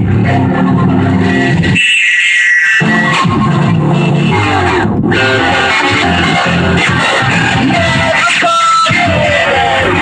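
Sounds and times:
music with steady bass line: 0.0 - 10.0.

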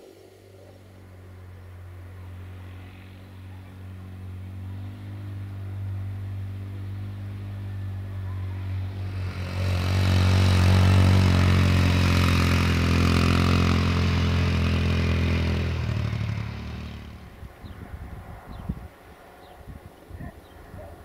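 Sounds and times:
quad bike engine hum: 0.0 - 21.0.

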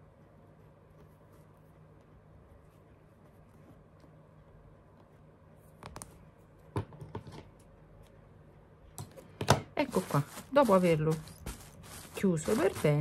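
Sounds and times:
fabric rustling: 9.8 - 13.0.

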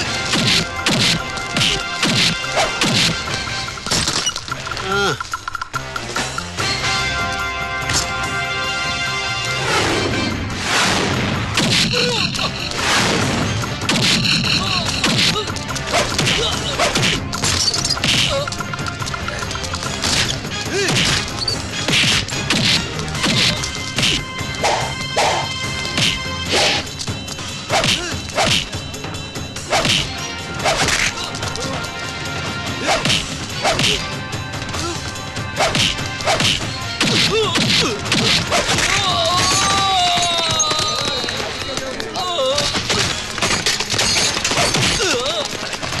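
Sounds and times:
background music: 0.0 - 46.0
punch whacks: 0.3 - 3.2, 26.0 - 26.8, 29.8 - 30.1, 32.9 - 34.0, 35.6 - 39.0.

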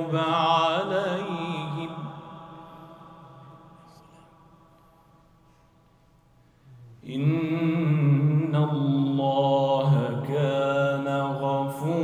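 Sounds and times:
man chanting recitation: 0.0 - 4.5, 6.7 - 12.0.

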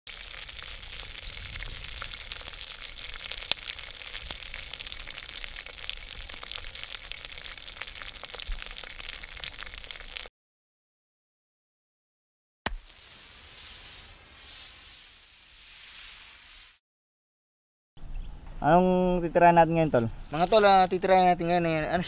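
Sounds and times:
pork deep-frying in oil: 0.0 - 10.3, 12.7 - 16.8
sizzling with crackles and pops: 0.0 - 10.3, 12.7 - 16.8.

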